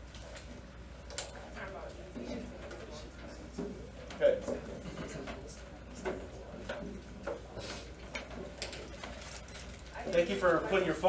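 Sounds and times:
small clicks and rustles: 8.0 - 10.5.

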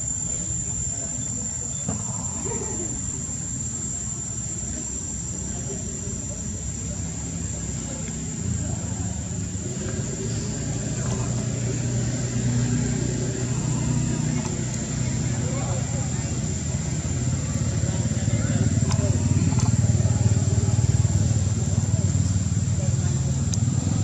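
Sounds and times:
vehicle engine running: 0.0 - 24.0.

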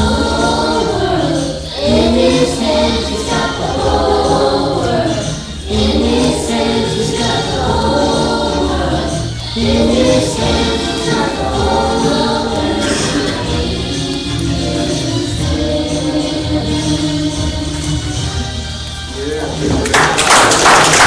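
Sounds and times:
children's choir singing: 0.0 - 18.7
instrumental accompaniment: 0.0 - 20.3.

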